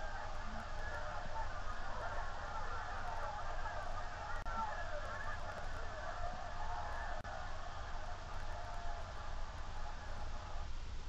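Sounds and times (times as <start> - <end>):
crowd noise through tv speaker: 0.0 - 11.0.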